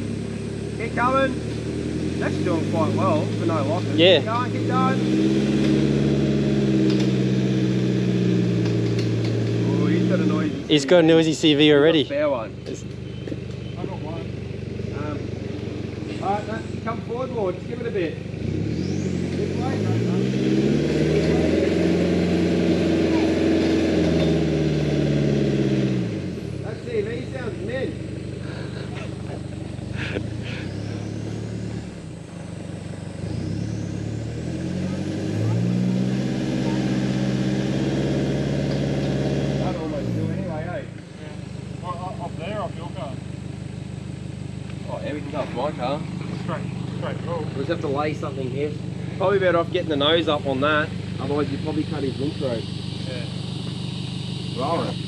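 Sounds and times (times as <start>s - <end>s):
truck engine revving: 0.0s - 55.0s.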